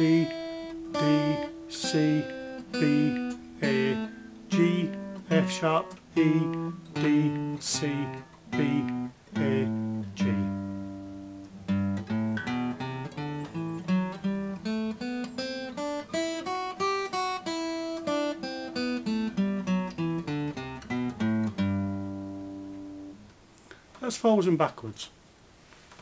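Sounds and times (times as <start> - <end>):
acoustic guitar playing a scale: 0.0 - 23.5.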